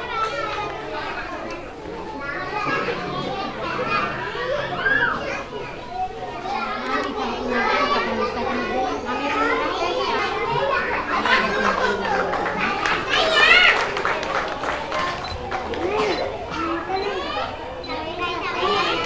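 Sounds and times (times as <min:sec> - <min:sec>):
children chattering and calling out: 0:00.0 - 0:19.0.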